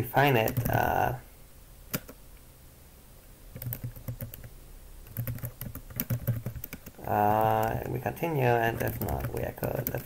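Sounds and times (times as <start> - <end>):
computer keyboard typing: 0.3 - 1.0, 1.9 - 2.2, 3.5 - 10.0.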